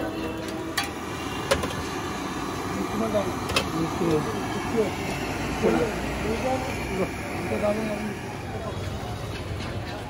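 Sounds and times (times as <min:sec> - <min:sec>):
busy street hum: 0:00.0 - 0:10.0.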